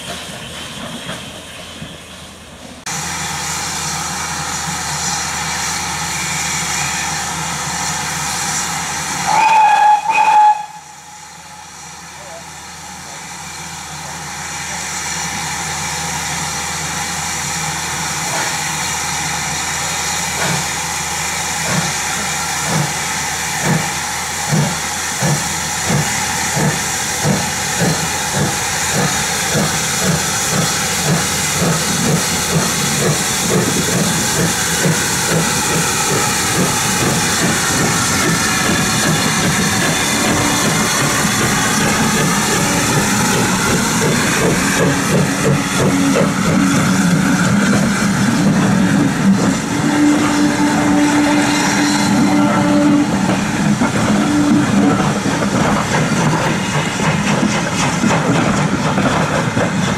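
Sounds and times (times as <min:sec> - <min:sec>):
steam hissing: 0:00.0 - 0:59.9
steam whistle blast: 0:09.2 - 0:11.7, 0:48.9 - 0:53.4, 0:54.1 - 0:55.0
locomotive exhaust beats: 0:23.6 - 0:59.9.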